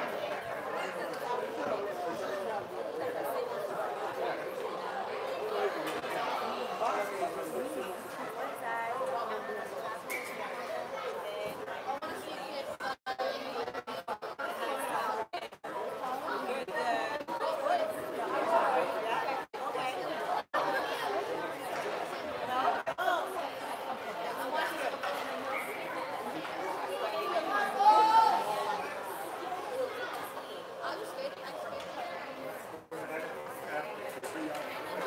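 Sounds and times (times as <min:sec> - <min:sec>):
people chatting: 0:00.0 - 0:35.0.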